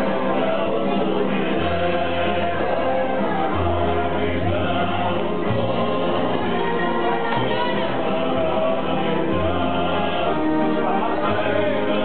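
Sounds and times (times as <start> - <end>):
accordion: 0.0 - 12.0
double bass: 0.0 - 12.0
guitar: 0.0 - 12.0
voices singing together: 0.0 - 12.0.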